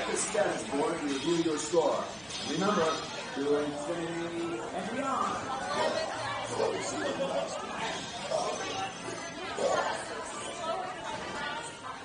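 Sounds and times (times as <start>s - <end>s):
indistinct voices and chatter: 0.0s - 12.0s.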